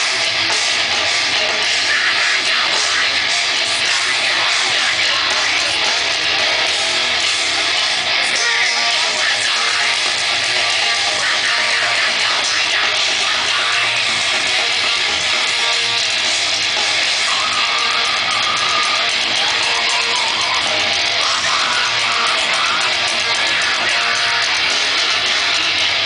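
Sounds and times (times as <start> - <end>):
live metal band playing: 0.0 - 26.0.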